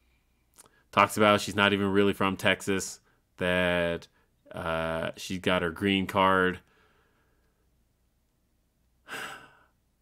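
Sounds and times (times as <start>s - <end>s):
man sighing: 9.0s - 9.8s.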